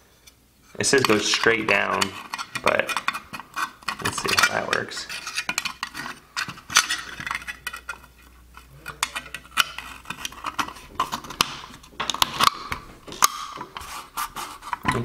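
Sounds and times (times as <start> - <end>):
metal scraping on metal: 0.6 - 15.0.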